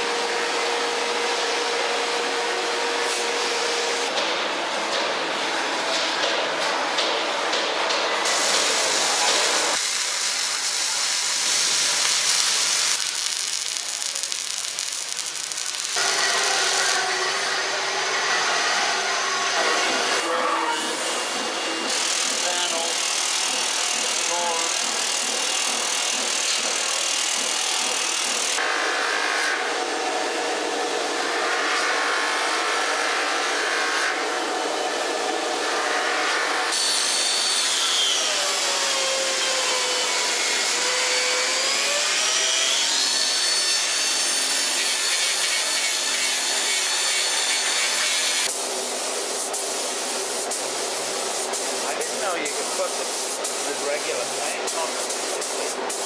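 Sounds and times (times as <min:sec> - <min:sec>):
metal cutting machines: 0:08.3 - 0:49.4
band saw cutting steel: 0:09.6 - 0:20.2, 0:35.9 - 0:48.5.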